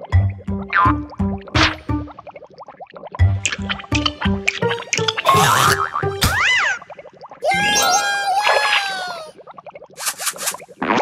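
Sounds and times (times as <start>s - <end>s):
light background music: 0.0s - 2.4s, 3.2s - 6.5s
cartoon boing: 5.2s - 6.9s.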